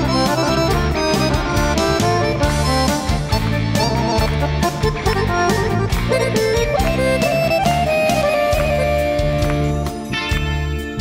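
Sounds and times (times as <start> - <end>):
accordion: 0.0 - 11.0
live folk-pop band: 0.0 - 11.0.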